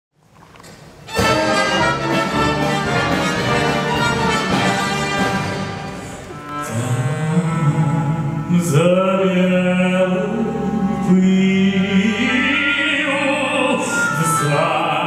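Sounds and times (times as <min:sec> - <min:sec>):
symphony orchestra strings playing: 0:01.1 - 0:15.0.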